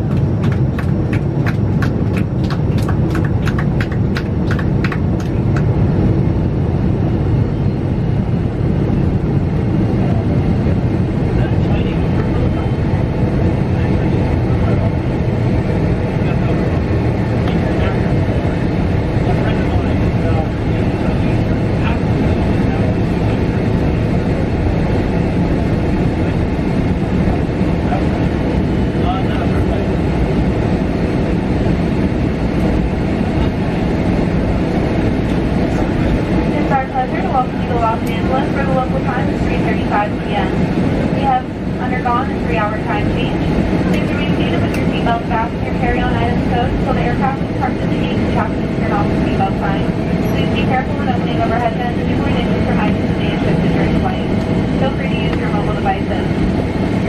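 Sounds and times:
jet engines and wheels rumbling: 0:00.0 - 0:57.0
people talking: 0:10.0 - 0:15.0, 0:16.1 - 0:18.6, 0:19.2 - 0:23.7, 0:27.2 - 0:28.3, 0:28.9 - 0:29.9, 0:35.7 - 0:56.4.

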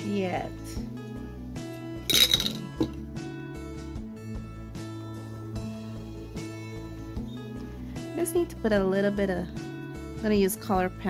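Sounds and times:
background music: 0:00.0 - 0:11.0
pencils clinking: 0:02.1 - 0:03.0.

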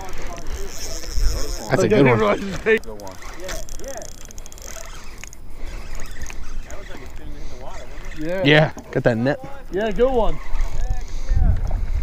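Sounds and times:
wind rumbling on microphone: 0:09.9 - 0:12.0.

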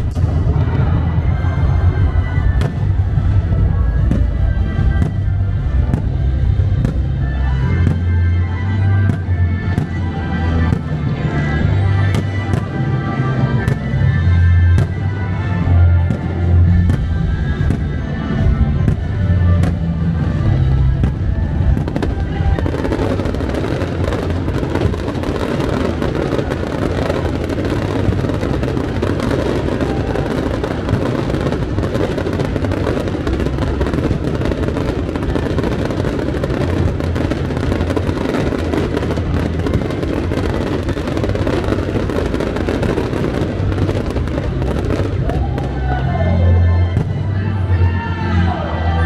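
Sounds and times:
fireworks crackling: 0:00.0 - 0:45.9
loud music with bass: 0:00.0 - 0:49.0.

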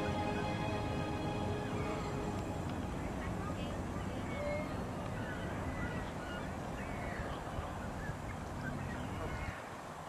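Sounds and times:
wind buffeting microphone: 0:00.0 - 0:10.0
faint bird calls: 0:03.9 - 0:09.7.

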